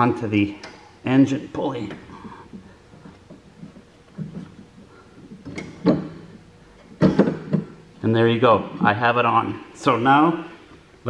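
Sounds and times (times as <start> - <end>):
belt clunks: 1.7 - 7.9.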